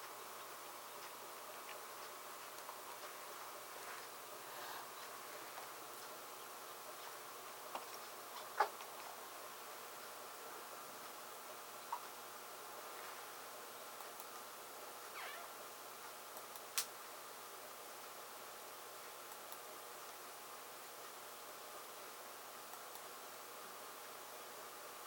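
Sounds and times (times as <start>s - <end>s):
faint hum: 0.0s - 25.0s
low steady hiss: 0.0s - 25.0s
tiny ticks: 14.0s - 14.4s, 16.3s - 17.0s.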